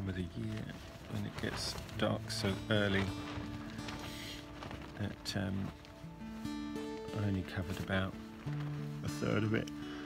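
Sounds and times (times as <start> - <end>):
soft music with held notes: 0.0 - 10.0.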